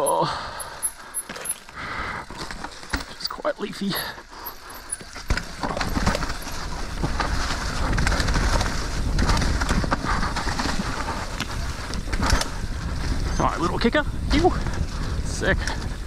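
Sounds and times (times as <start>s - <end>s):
bike knocking over roots: 0.0s - 13.3s
bike tyres rolling over leaves: 0.0s - 16.0s
wind rumbling on microphone: 5.0s - 16.0s.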